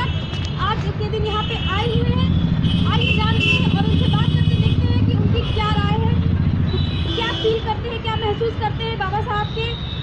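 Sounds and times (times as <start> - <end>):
voices: 0.0 - 9.9
motor vehicle engine rumble: 0.1 - 9.3.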